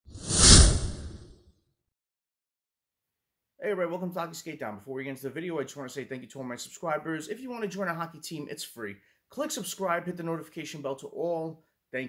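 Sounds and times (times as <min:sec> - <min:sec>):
whoosh with deep rumble: 0:00.1 - 0:01.3.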